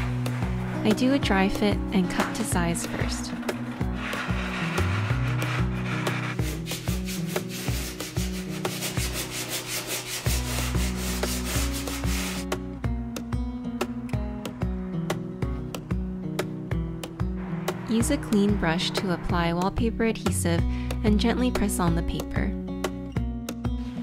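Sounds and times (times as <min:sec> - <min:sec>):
sanding sponge rubbing on wall: 0:00.0 - 0:12.5
background music: 0:00.0 - 0:24.0.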